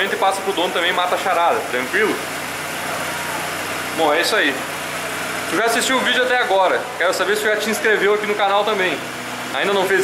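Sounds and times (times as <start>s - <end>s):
steady mechanical noise: 0.0s - 10.0s.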